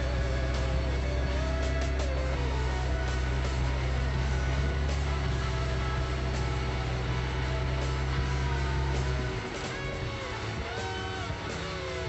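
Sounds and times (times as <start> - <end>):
background guitar music: 0.0 - 12.0
car engine at low revs: 0.0 - 12.0.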